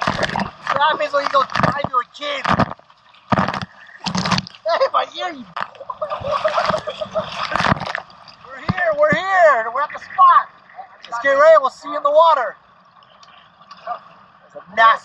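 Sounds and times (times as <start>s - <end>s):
sea spray splashing: 6.0s - 8.6s.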